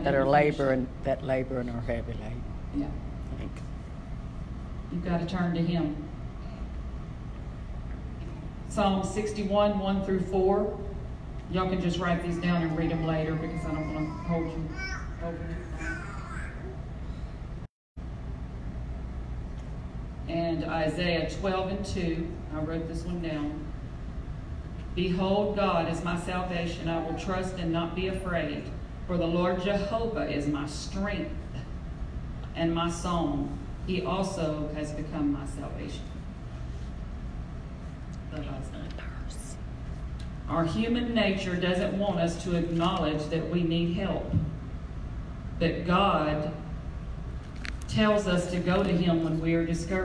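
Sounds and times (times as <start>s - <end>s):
low room rumble: 0.0s - 50.0s
steady low hum: 0.0s - 50.0s
woman talking: 4.9s - 6.2s, 11.5s - 15.9s, 20.3s - 23.7s, 25.0s - 31.6s, 32.6s - 36.2s, 38.3s - 39.6s, 40.5s - 44.4s, 47.9s - 50.0s.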